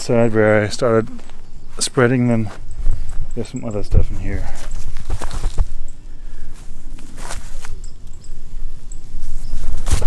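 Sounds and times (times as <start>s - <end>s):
footsteps through grass: 0.2s - 5.8s, 6.5s - 7.9s
camera handling rustles and knocks: 4.6s - 5.8s.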